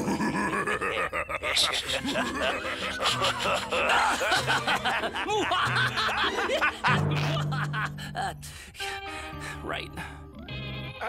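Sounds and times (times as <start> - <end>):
cartoon villains laughing: 0.0 - 8.5.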